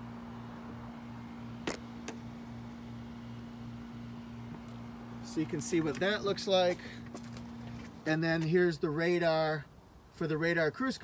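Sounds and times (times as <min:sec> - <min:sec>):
low mechanical hum with pulsing: 0:00.0 - 0:10.2.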